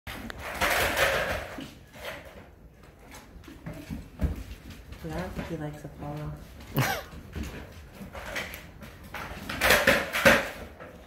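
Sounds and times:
animals scrabbling on hardwood floor: 0.1 - 11.0.

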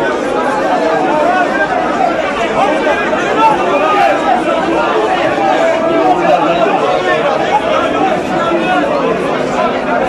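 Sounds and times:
crowd shouting in protest: 0.0 - 10.0.

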